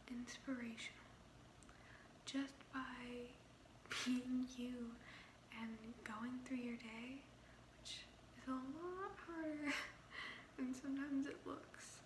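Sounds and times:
woman speaking softly: 0.0 - 1.1, 2.3 - 3.4, 4.0 - 9.9, 10.6 - 12.0.

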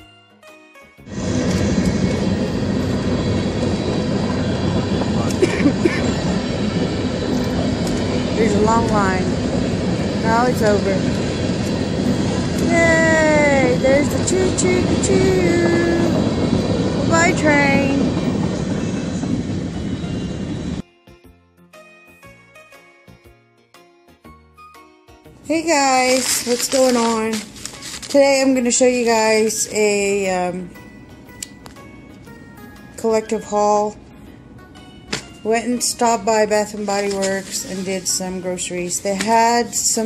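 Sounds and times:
freight train rolling: 1.1 - 20.8, 25.6 - 30.5.

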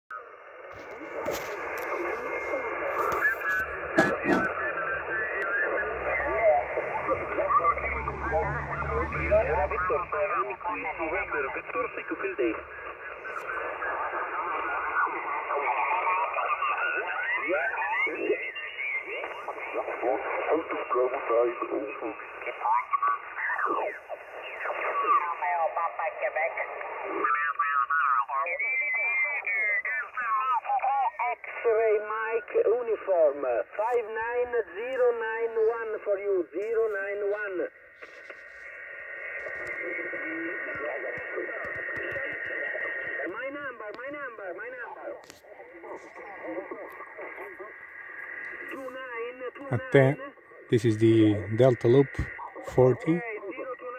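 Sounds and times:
radio band noise hiss: 0.1 - 53.9
weak voice over radio: 0.7 - 38.4, 39.4 - 47.8, 48.4 - 53.9
radio voices sliding in pitch: 0.8 - 26.1.

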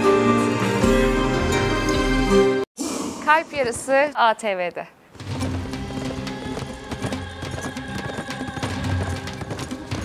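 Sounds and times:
horses galloping: 5.2 - 10.0.

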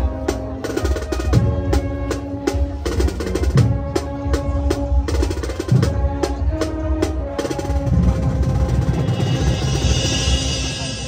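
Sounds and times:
drum line drumming: 0.0 - 11.0.

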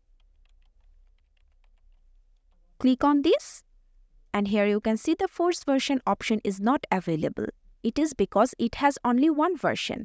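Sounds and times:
typing on computer keyboard: 0.0 - 2.6.

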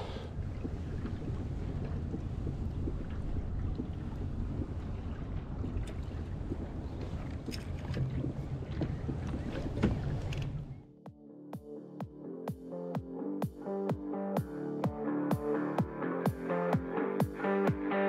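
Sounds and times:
wind buffeting microphone: 0.2 - 10.8.

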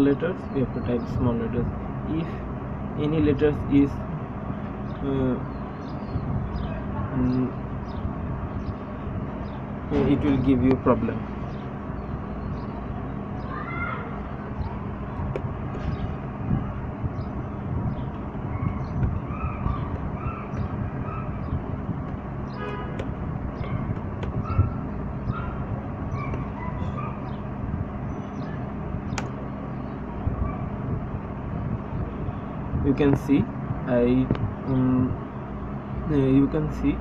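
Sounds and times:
low rumble and hum: 0.0 - 37.0
laptop keys tapping: 22.9 - 23.2.

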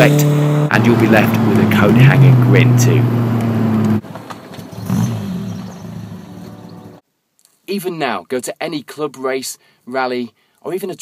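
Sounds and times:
car engine from inside cabin: 0.0 - 4.0
engine revving: 0.0 - 4.0, 4.7 - 6.7.

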